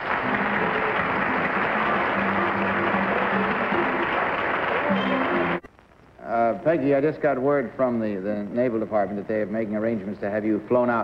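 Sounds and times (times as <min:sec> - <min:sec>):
audience applauding: 0:00.0 - 0:05.6
faint music: 0:00.0 - 0:11.0.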